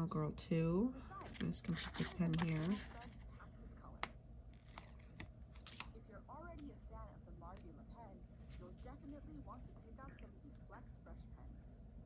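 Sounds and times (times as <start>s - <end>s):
paper rustling: 1.2s - 3.2s.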